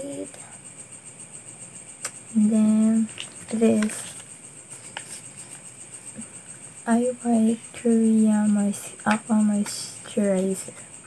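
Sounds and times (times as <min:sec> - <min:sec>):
steady high hiss: 0:00.0 - 0:11.0.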